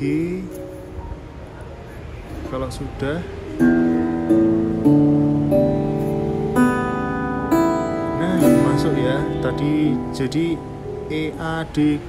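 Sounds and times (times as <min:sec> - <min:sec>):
acoustic guitar strings plucked: 0:03.5 - 0:11.6.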